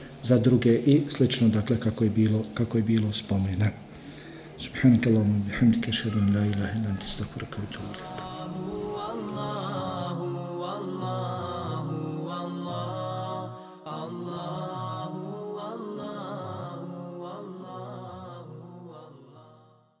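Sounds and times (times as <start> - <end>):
melodic chanted vocal music: 4.3 - 20.0.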